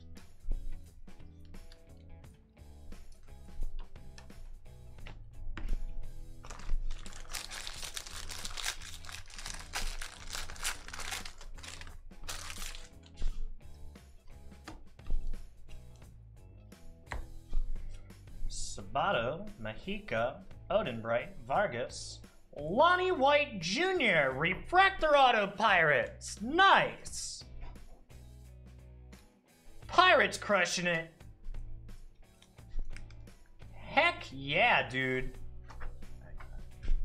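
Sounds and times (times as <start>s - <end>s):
background music: 0.0s - 37.0s
foil wrapper crinkling and tearing: 6.4s - 13.1s.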